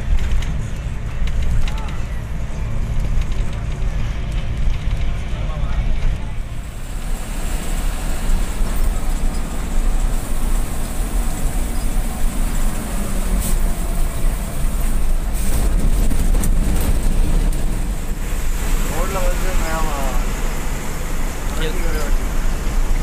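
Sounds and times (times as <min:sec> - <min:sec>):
bus engine and road rumble: 0:00.0 - 0:23.0.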